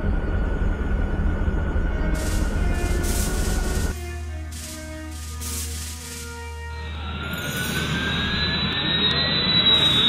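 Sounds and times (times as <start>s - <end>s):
background music: 1.9s - 8.0s
sci-fi jet engine with rising whine: 4.6s - 10.0s.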